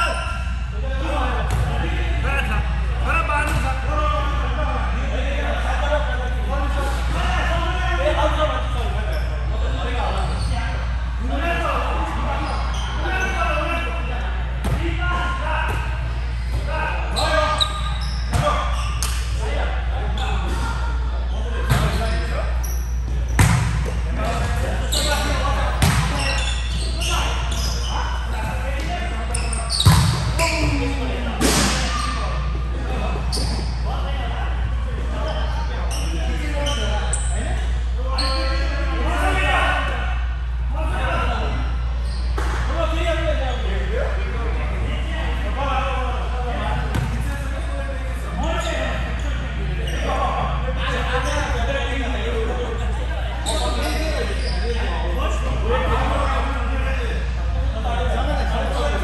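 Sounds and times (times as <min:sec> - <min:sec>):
players' voices: 0:00.0 - 0:59.0.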